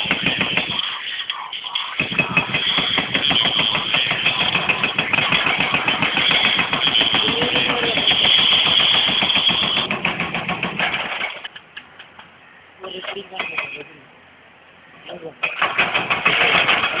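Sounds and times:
hydraulic breaker hammering concrete: 0:00.0 - 0:00.9, 0:02.0 - 0:11.4, 0:15.4 - 0:17.0.

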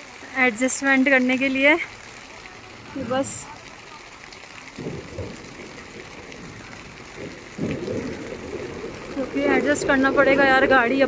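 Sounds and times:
stream running over stones: 0:00.0 - 0:11.0.

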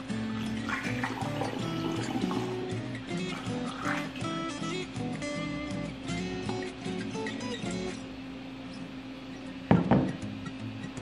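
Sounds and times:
background music repeating notes: 0:00.0 - 0:08.0.

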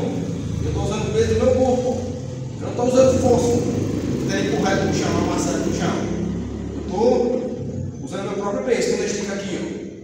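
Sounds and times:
man speaking: 0:00.0 - 0:10.0
steady low hum: 0:00.0 - 0:10.0.

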